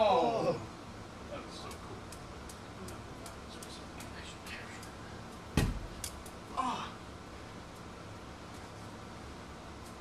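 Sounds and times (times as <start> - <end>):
faint clicks: 1.7 - 5.4
heavy thump: 5.6 - 5.9.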